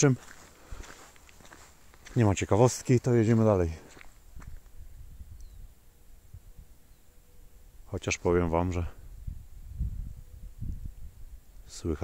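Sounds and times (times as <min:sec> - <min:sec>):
footsteps on wet asphalt: 0:00.0 - 0:04.7.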